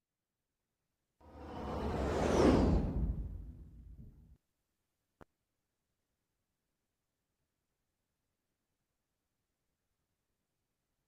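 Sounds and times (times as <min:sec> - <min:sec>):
whoosh with falling sweep: 0:01.3 - 0:04.3.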